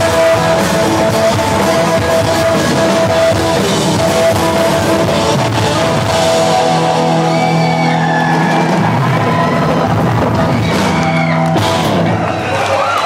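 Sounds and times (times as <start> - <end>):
punk rock band playing loud: 0.0 - 13.0
crowd whooping: 1.4 - 13.0.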